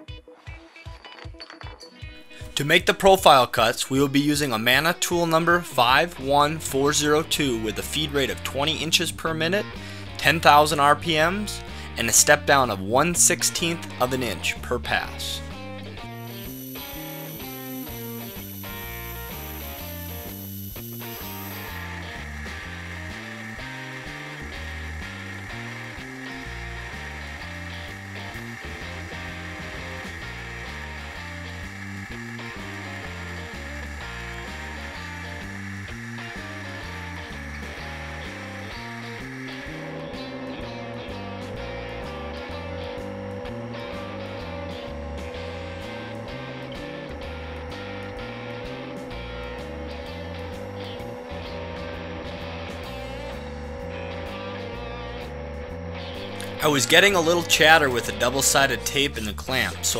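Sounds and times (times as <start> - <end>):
background music with steady beat: 0.0 - 59.9
cnc router milling metal: 16.2 - 40.0.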